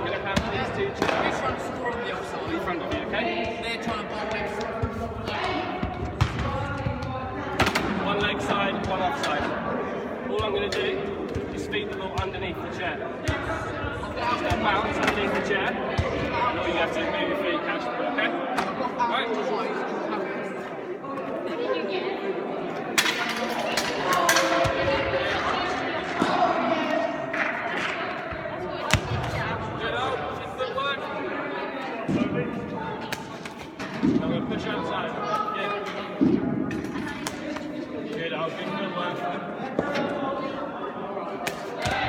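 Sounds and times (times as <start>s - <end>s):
voices chattering in echoing hall: 0.0s - 42.0s.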